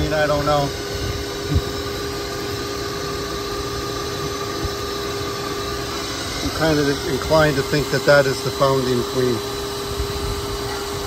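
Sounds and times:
vacuum cleaner running: 0.0s - 11.0s.

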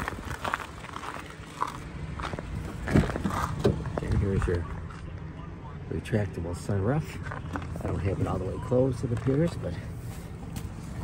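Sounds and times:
footsteps on packed snow: 0.0s - 4.0s.

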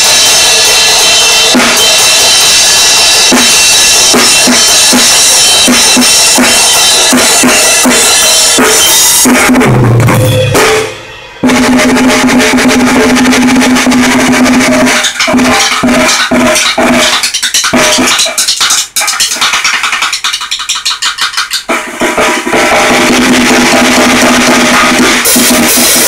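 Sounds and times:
drum kit played fast: 0.0s - 26.0s.

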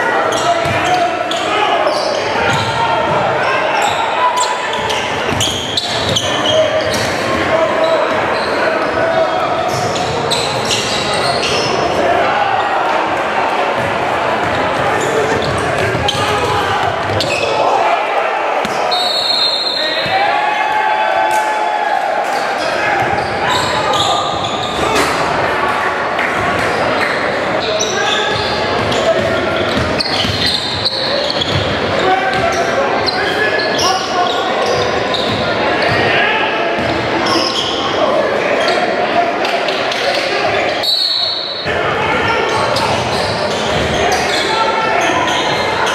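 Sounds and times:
chatter of players and spectators: 0.0s - 45.9s
voices echoing in hall: 0.0s - 45.9s
basketball bouncing on court: 13.8s - 17.4s.

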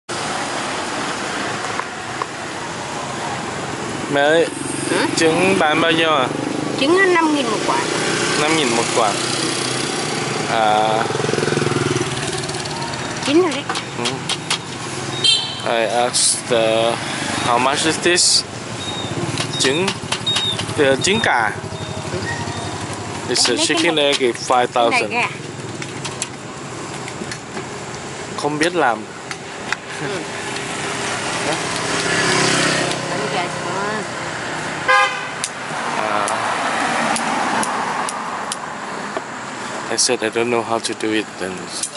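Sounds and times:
roadside traffic noise: 0.0s - 41.9s.

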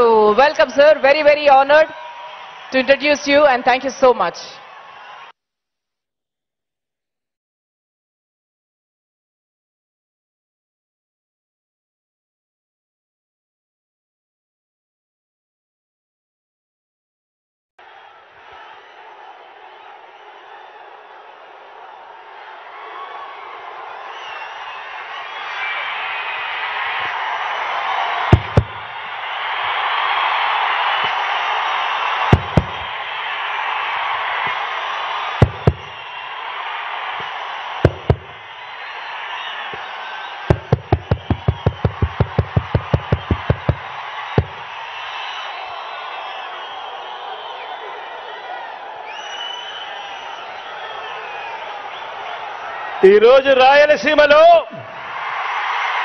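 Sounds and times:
crowd cheering: 0.0s - 5.4s, 17.8s - 56.0s
loud sharp thumps: 28.3s - 29.0s, 32.3s - 33.0s, 35.4s - 36.0s, 37.8s - 38.4s, 40.5s - 44.7s.

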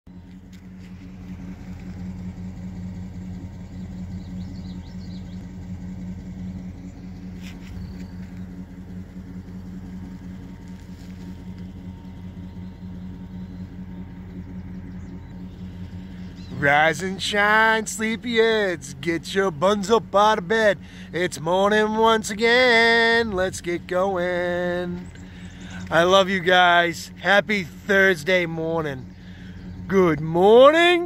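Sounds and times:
vehicle engine idling: 0.0s - 31.0s.

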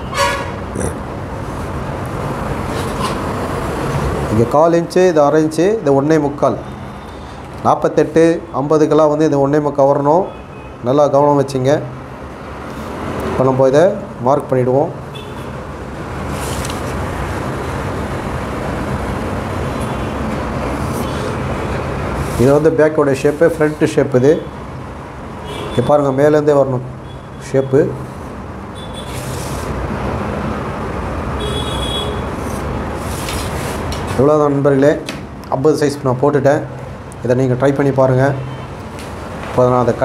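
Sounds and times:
car horn toot: 0.0s - 0.6s, 15.1s - 15.6s, 25.4s - 26.0s, 28.7s - 29.2s, 31.4s - 32.4s
road traffic noise: 0.0s - 40.0s.

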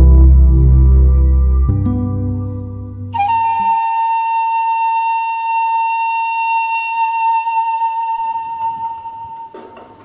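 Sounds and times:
long high flute note: 0.0s - 9.6s.

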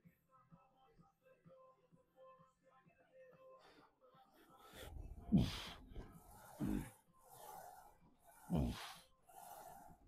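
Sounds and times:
breathy inhaling: 4.5s - 10.0s.

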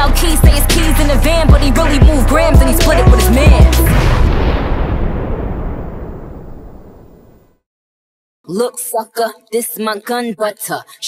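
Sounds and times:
music: 0.0s - 3.9s
explosion-like boom: 3.1s - 7.6s.

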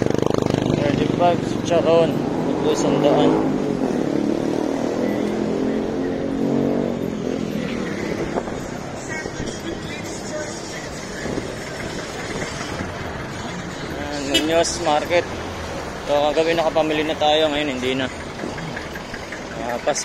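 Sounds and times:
street hum: 0.0s - 20.0s
vehicle engine running: 0.0s - 20.0s.

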